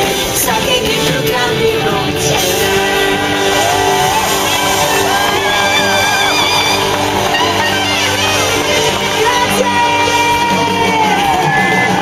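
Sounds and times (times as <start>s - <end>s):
live pop-rock band: 0.0s - 12.0s.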